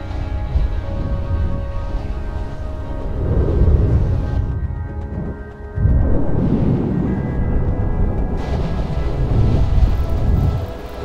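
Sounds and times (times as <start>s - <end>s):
music with long held notes: 0.0s - 11.0s
deep rumble of thunder: 0.4s - 11.0s.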